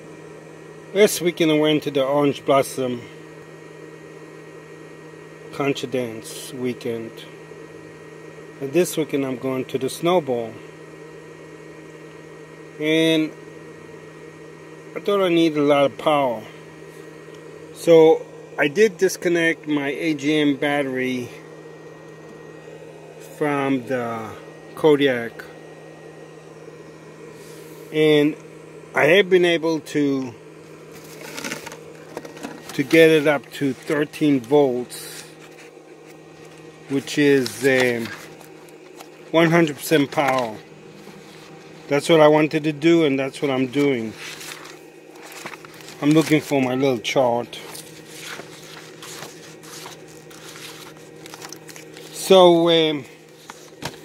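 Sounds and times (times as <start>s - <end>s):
steady hum and hiss: 0.0s - 54.0s
paper pages rustling: 30.9s - 36.7s, 37.4s - 41.9s, 43.7s - 46.6s, 47.6s - 52.2s, 53.2s - 54.0s.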